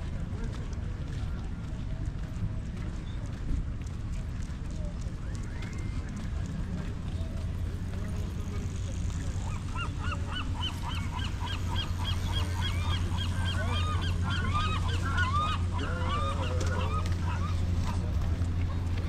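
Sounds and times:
steady low rumble: 0:06.0 - 0:19.0
flock of birds calling: 0:08.8 - 0:18.8.

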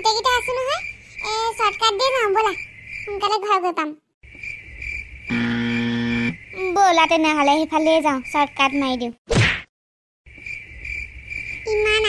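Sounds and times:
crickets chirping: 0:00.0 - 0:09.2, 0:10.3 - 0:12.0
low buzzing tone: 0:05.3 - 0:06.4.

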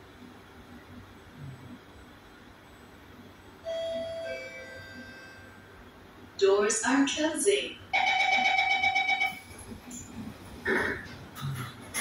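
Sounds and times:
low steady train hum: 0:00.0 - 0:12.0.

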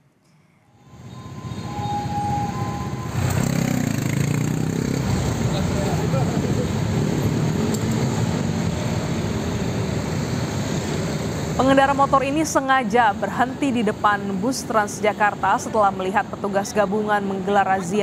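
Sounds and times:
car engines and tyres passing: 0:00.7 - 0:18.0
motorcycles passing: 0:00.9 - 0:12.8.

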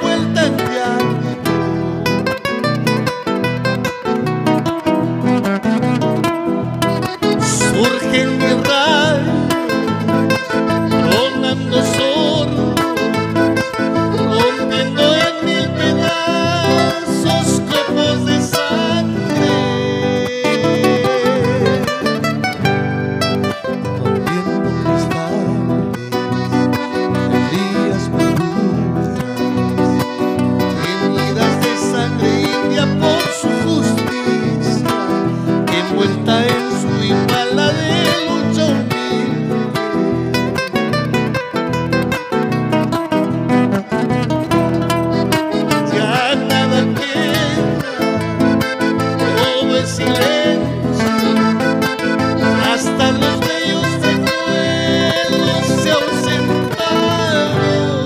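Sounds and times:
accordion melody: 0:00.0 - 0:58.0
mandolin: 0:00.0 - 0:58.0
strummed acoustic guitars: 0:00.0 - 0:58.0.

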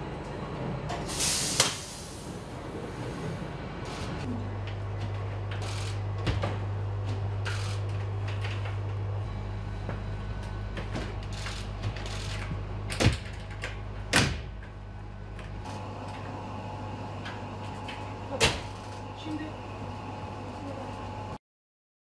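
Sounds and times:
metro train electrical hum: 0:00.0 - 0:21.4.

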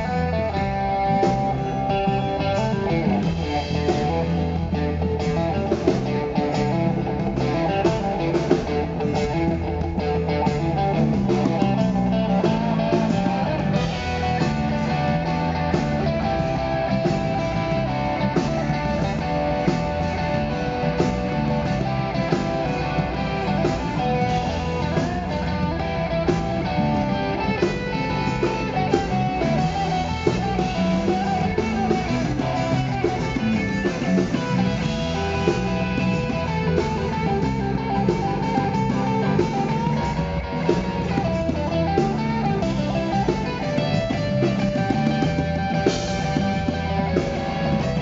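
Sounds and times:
electric guitar: 0:00.0 - 0:48.0
live rock band playing: 0:00.0 - 0:48.0.

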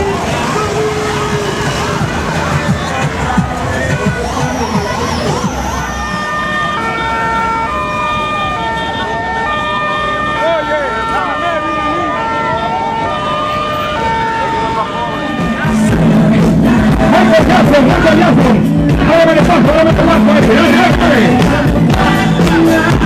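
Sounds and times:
two-tone siren: 0:00.0 - 0:17.9
wailing siren: 0:00.0 - 0:18.2
crowd voices: 0:00.0 - 0:23.0.

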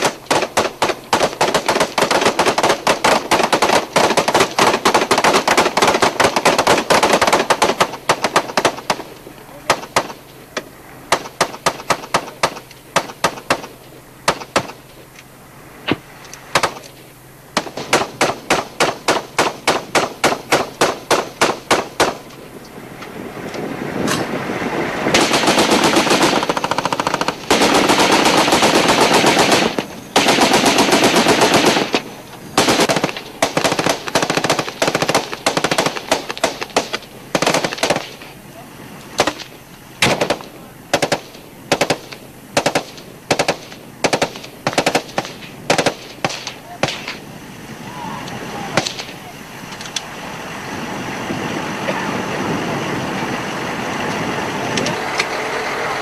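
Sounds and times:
machine-gun fire: 0:00.0 - 0:09.1, 0:09.7 - 0:10.2, 0:11.1 - 0:14.8, 0:16.5 - 0:16.8, 0:17.6 - 0:22.2, 0:25.1 - 0:38.2, 0:39.2 - 0:47.2.

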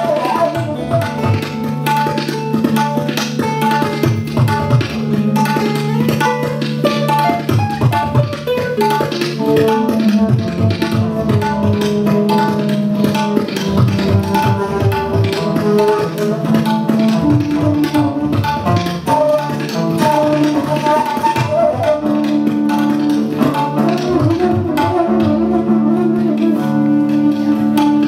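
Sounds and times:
flute melody: 0:00.0 - 0:02.9, 0:04.5 - 0:28.0
plucked strings: 0:00.0 - 0:28.0
tabla strokes: 0:00.0 - 0:28.0.

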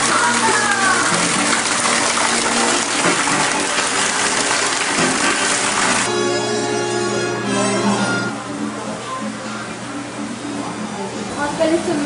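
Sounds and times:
rushing water-like noise: 0:00.0 - 0:06.1
music: 0:00.0 - 0:12.0
faint voices: 0:07.6 - 0:12.0.

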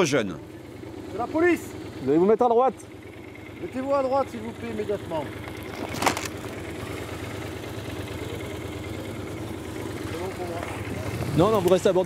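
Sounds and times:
car engine running low: 0:00.0 - 0:12.0
motorcycle engine running low: 0:00.0 - 0:12.0.

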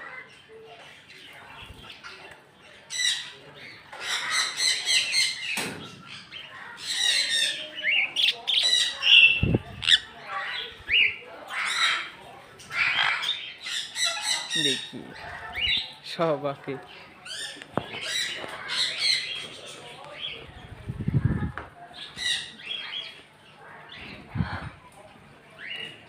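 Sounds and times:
parrots squawking: 0:02.9 - 0:05.6, 0:06.2 - 0:16.0.

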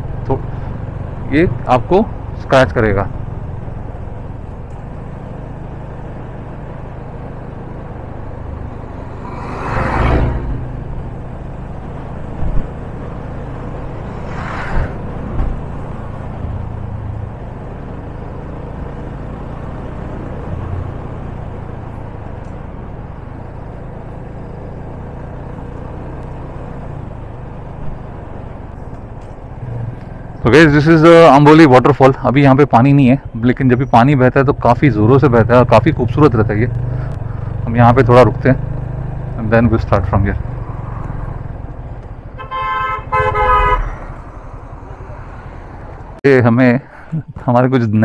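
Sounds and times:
motorcycle engine running: 0:34.8 - 0:42.2.

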